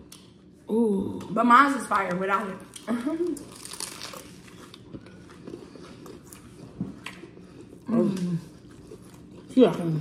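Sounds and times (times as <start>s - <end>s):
quiet chewing: 2.6s - 10.0s.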